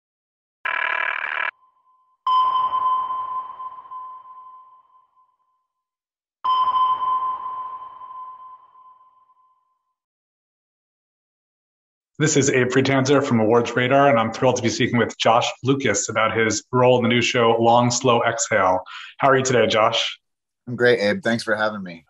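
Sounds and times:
sonar pings: 0:01.6 - 0:10.0.

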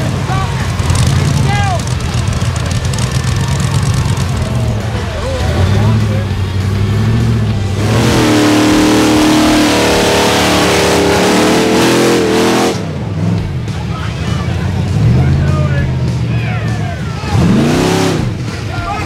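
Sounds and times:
buggy engine revving: 0:00.0 - 0:19.0.

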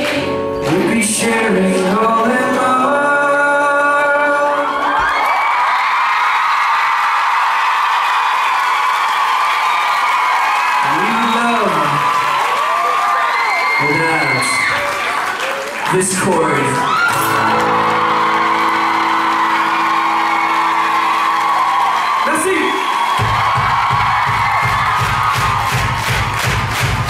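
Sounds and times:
acoustic guitar: 0:00.0 - 0:04.8, 0:16.0 - 0:22.0
crowd cheering and applauding: 0:00.0 - 0:27.0
whoops and shouts: 0:04.6 - 0:15.1, 0:16.8 - 0:25.9.

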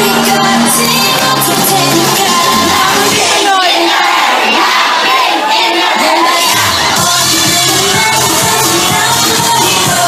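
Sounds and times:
audience cheering: 0:00.0 - 0:10.0
loud pop dance track over pa: 0:00.0 - 0:10.0.

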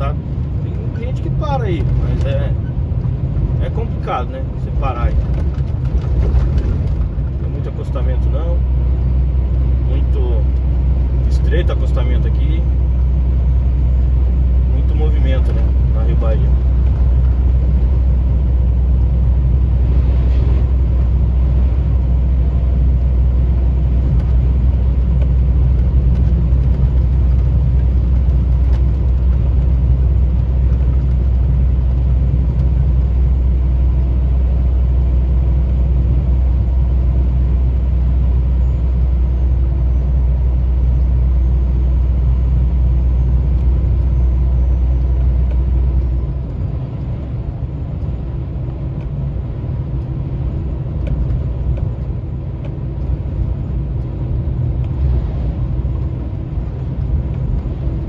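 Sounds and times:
road noise: 0:00.0 - 0:58.0
truck engine drone: 0:00.0 - 0:58.0.

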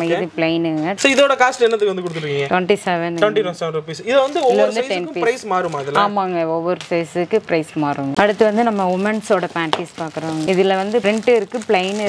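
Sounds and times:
person talking: 0:03.2 - 0:06.4
plastic wrapped garments clicking: 0:04.1 - 0:04.8, 0:08.2 - 0:12.0.

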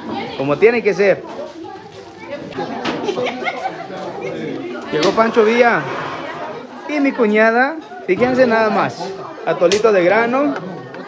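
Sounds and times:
chatter of people talking: 0:00.0 - 0:11.0.

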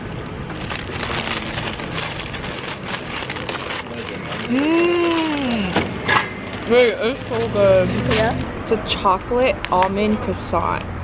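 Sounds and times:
crisp pastry crackling when chewed: 0:00.5 - 0:05.7.

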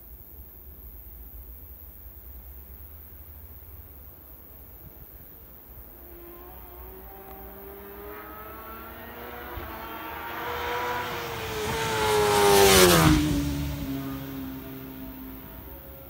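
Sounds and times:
motorcycle accelerating past: 0:05.9 - 0:16.0.

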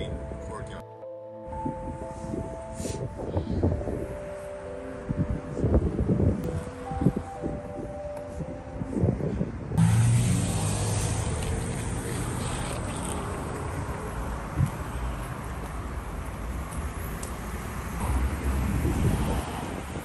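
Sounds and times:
soft background music: 0:00.0 - 0:11.0
wind on microphone: 0:01.5 - 0:15.5, 0:17.9 - 0:20.0
cars passing: 0:03.7 - 0:20.0.

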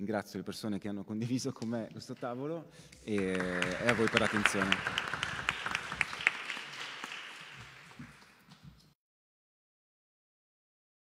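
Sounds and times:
small audience applause: 0:03.1 - 0:08.6.

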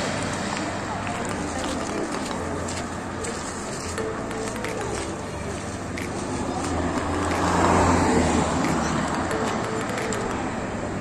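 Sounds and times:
street background noise: 0:00.0 - 0:11.0
voices: 0:00.0 - 0:11.0
music: 0:00.5 - 0:11.0.

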